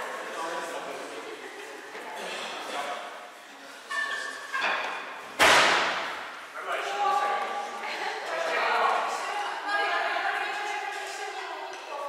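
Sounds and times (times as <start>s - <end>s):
loud impact ringing in hall: 5.4s - 6.4s
voices: 6.5s - 12.0s.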